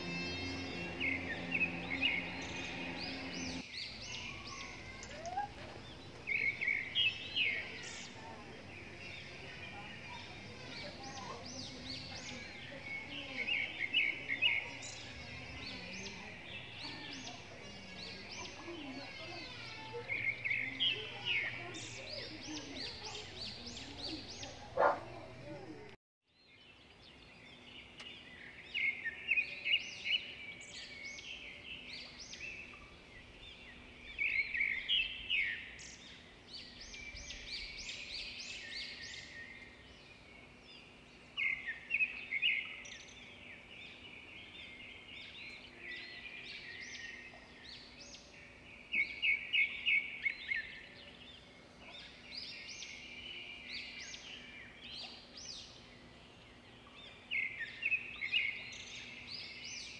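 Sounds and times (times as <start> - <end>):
birds chirping and twittering: 0.0 - 59.9.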